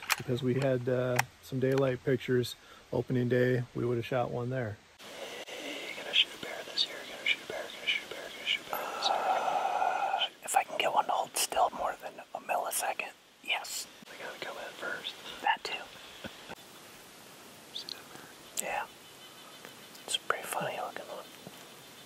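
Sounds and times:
people whispering: 0:05.2 - 0:16.5, 0:17.7 - 0:21.4.

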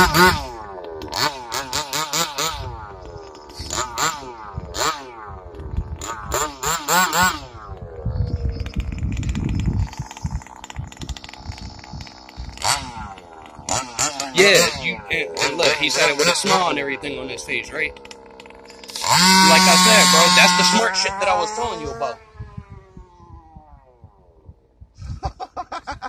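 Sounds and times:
two-stroke engine revving: 0:00.0 - 0:24.8.

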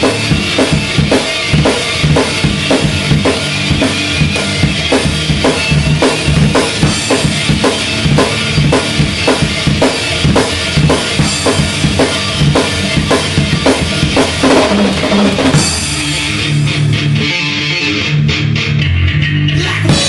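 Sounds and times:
cymbals: 0:00.0 - 0:16.9
drum kit played hard: 0:00.0 - 0:18.8, 0:19.6 - 0:20.0
bass guitar: 0:00.0 - 0:20.0
distorted guitar: 0:00.0 - 0:20.0.

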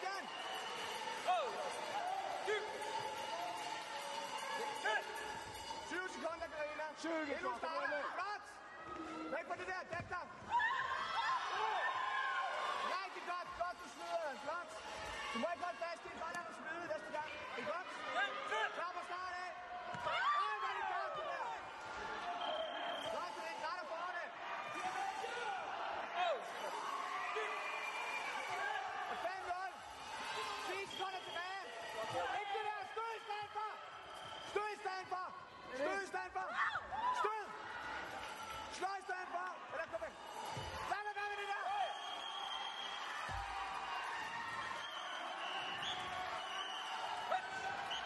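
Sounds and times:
crowd calling and shouting: 0:00.0 - 0:48.0.

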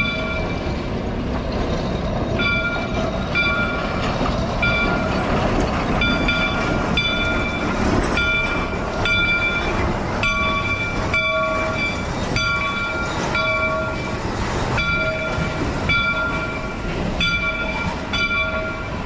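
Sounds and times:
steam locomotive bell ringing: 0:00.0 - 0:19.0
train cars rumbling past: 0:00.0 - 0:19.0.

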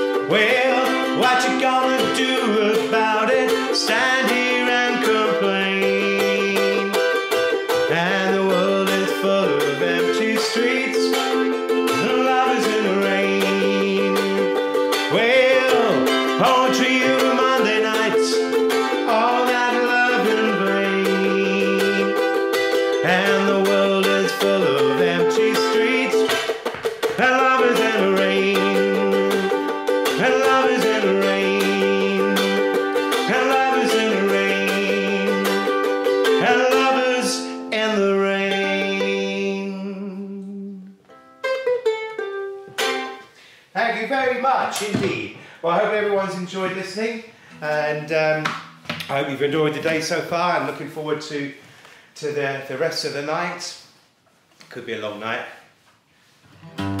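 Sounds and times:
man singing: 0:00.0 - 0:41.0
ukulele strumming chords: 0:00.0 - 0:43.4, 0:47.6 - 0:50.8, 0:56.6 - 0:57.0.

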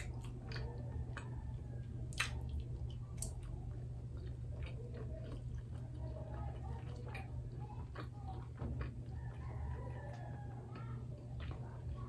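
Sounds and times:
chewing clicks: 0:00.0 - 0:12.0.

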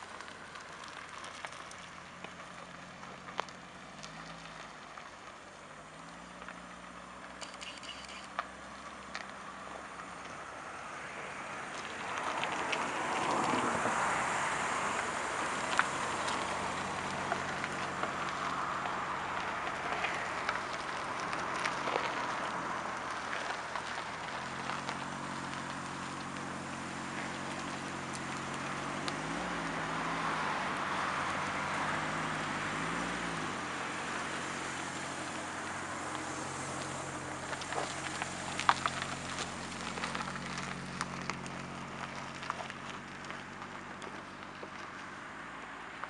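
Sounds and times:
car engine idling and revving: 0:00.0 - 0:46.0
sharp clicks: 0:07.4 - 0:08.5.

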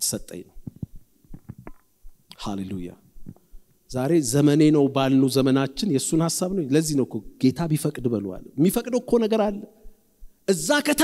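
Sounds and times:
man speaking: 0:02.3 - 0:03.1, 0:03.9 - 0:09.9, 0:10.5 - 0:11.0.

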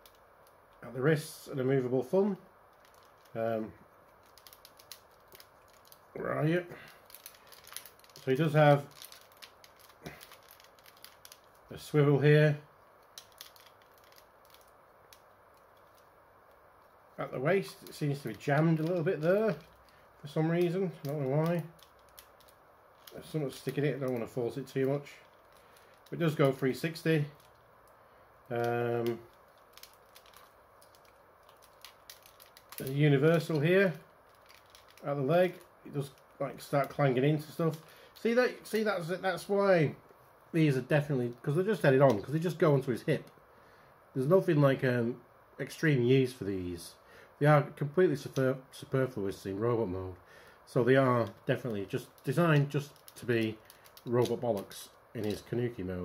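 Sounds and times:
plastic action figure joints clicking: 0:04.2 - 0:06.0, 0:29.0 - 0:32.9, 0:34.3 - 0:35.6.

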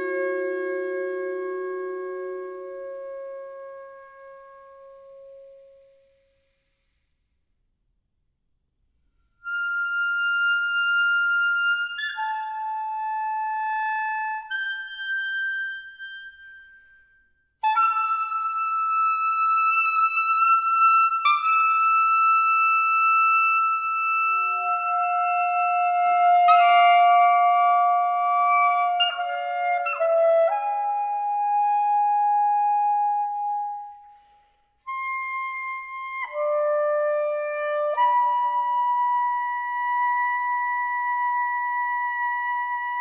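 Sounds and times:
saxophone quartet long notes: 0:00.0 - 0:05.0.

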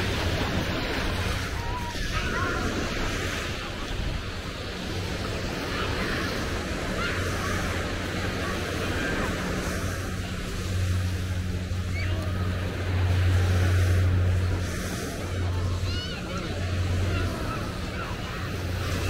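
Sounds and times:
low steady hum: 0:00.0 - 0:19.0
small waves washing onto sand: 0:00.0 - 0:19.0
wind on microphone: 0:00.0 - 0:19.0.

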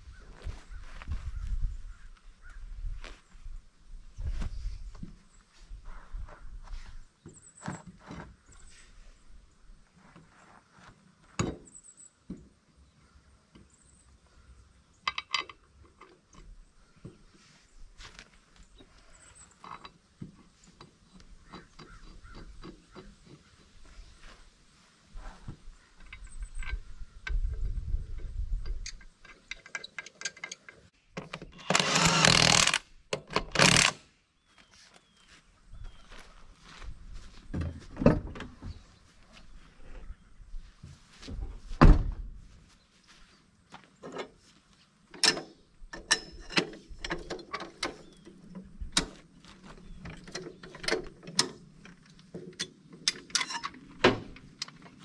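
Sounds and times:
impact wrench running: 0:31.6 - 0:32.8, 0:33.6 - 0:34.0
metal clinks and knocks: 0:50.1 - 0:55.0.

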